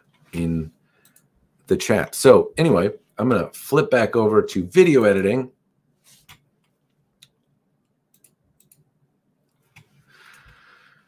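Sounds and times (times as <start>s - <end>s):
faint computer mouse clicks: 1.0s - 1.3s, 8.1s - 8.8s.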